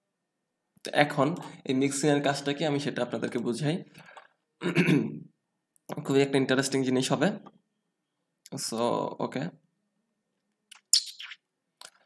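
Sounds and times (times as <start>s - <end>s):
high-pitched chirping: 10.8s - 11.4s.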